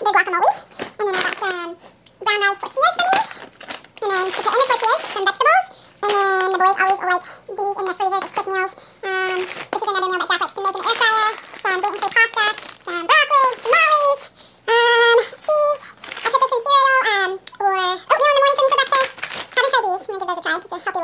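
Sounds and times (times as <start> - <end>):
sped-up high-pitched woman talking: 0.0 - 3.4, 4.0 - 21.0.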